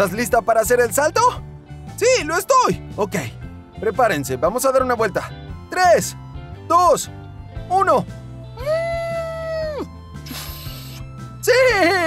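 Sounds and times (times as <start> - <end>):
background music: 0.0 - 12.0
hissing whoosh: 10.2 - 11.1.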